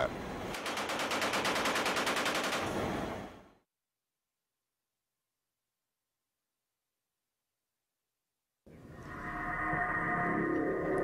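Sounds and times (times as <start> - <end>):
machine gun firing: 0.5 - 2.9.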